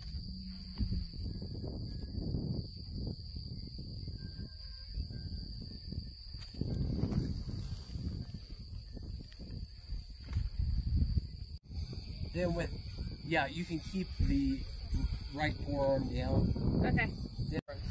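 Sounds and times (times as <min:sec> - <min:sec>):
high-pitched insect drone: 0:00.0 - 0:17.9
wind rumble on microphone: 0:00.0 - 0:17.9.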